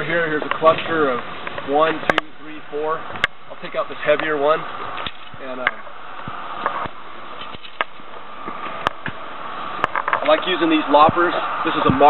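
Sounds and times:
steady traffic noise: 0:00.0 - 0:12.0.

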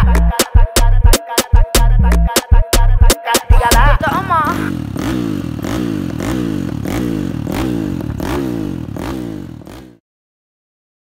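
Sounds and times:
engine revving: 0:03.6 - 0:10.0.

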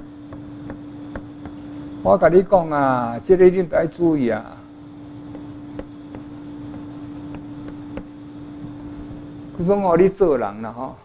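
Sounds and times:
chalk scratching on blackboard: 0:00.0 - 0:02.0, 0:04.8 - 0:09.2
chalk tapping on blackboard: 0:00.0 - 0:02.0, 0:04.8 - 0:08.8
steady low hum: 0:00.0 - 0:11.0.

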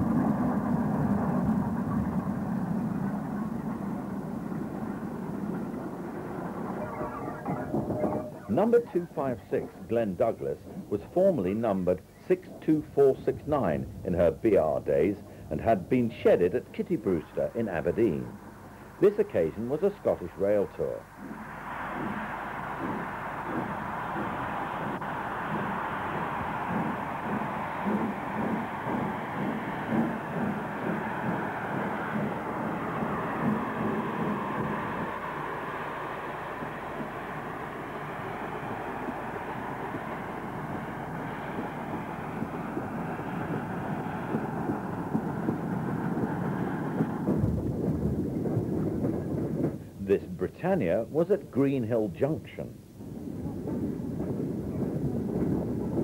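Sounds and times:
steam locomotive running: 0:00.0 - 0:56.0.

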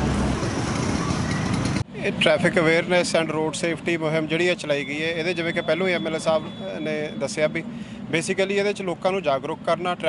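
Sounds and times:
low vehicle rumble: 0:00.0 - 0:10.0
traffic noise: 0:00.0 - 0:10.0.

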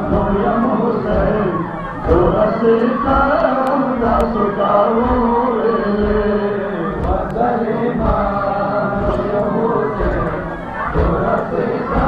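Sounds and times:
chest-beating thuds: 0:00.0 - 0:12.0
group chanting a lament in unison: 0:00.0 - 0:12.0.

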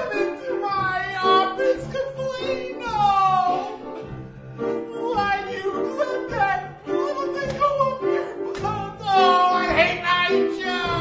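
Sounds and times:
person singing: 0:04.8 - 0:11.0.

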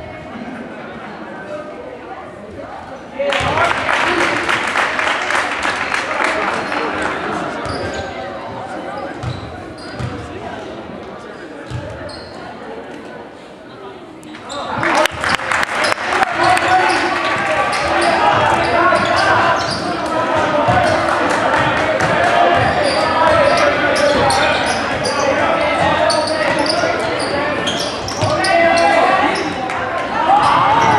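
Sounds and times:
crowd voices: 0:00.0 - 0:30.9.

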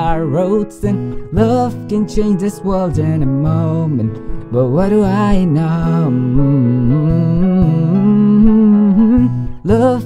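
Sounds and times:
strummed acoustic guitar: 0:00.0 - 0:10.0
man humming: 0:06.0 - 0:09.7.

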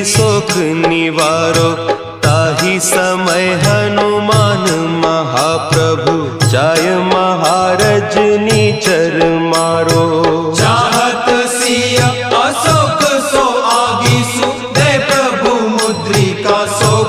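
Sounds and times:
instrumental accompaniment: 0:00.0 - 0:17.0
person singing devotional hymn: 0:00.0 - 0:17.0
steady percussion beat: 0:00.0 - 0:17.0.

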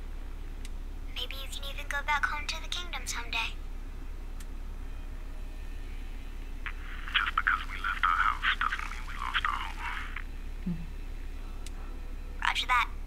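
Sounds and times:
low hum: 0:00.0 - 0:13.0
radio static with garbled transmission: 0:06.6 - 0:10.3.

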